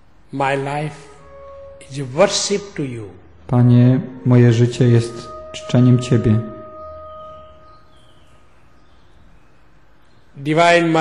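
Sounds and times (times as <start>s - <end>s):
low hum: 0.0s - 10.2s
held tone with octave: 0.4s - 9.6s.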